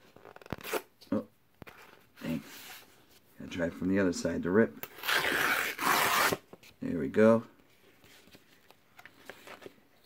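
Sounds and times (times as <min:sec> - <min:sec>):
paper envelope ripping: 0:05.0 - 0:06.4.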